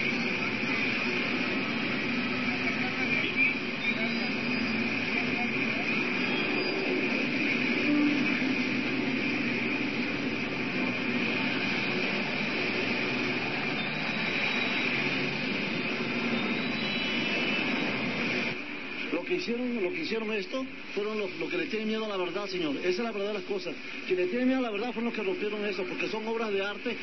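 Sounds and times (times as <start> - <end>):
indistinct voices: 0.0 - 16.9
traffic roar: 0.0 - 27.0.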